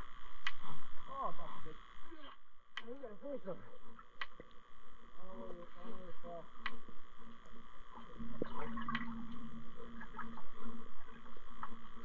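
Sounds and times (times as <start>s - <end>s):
muffled person's voice: 1.1s - 3.8s, 5.2s - 6.6s.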